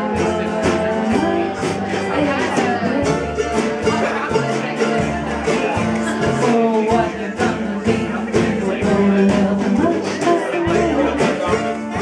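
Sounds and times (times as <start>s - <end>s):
acoustic guitar strumming: 0.0s - 12.0s
drum kit beat: 0.0s - 12.0s
mandolin: 0.0s - 12.0s
upright bass: 0.0s - 12.0s.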